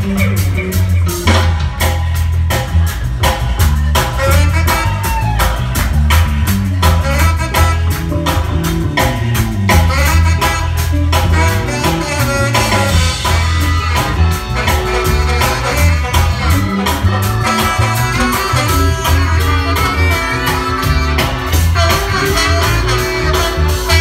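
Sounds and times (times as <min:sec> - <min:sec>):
bass line: 0:00.0 - 0:24.0
drum kit: 0:00.0 - 0:24.0
electric guitar: 0:00.0 - 0:24.0.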